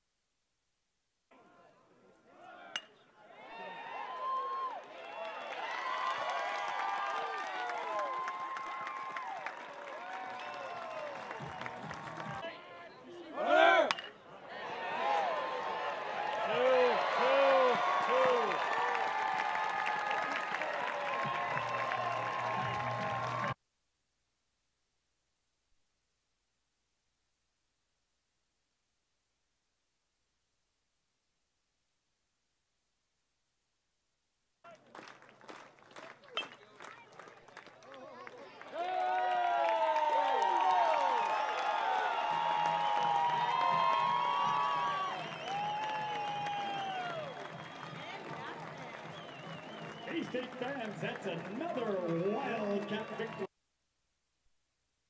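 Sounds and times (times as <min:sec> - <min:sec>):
crowd shouting: 0:02.3 - 0:23.6, 0:38.6 - 0:53.5
metal bat ping hitting ball: 0:02.7 - 0:03.0, 0:13.8 - 0:14.2
crowd voices: 0:10.3 - 0:18.6, 0:46.2 - 0:53.5
bat cracking on baseball: 0:13.7 - 0:14.2.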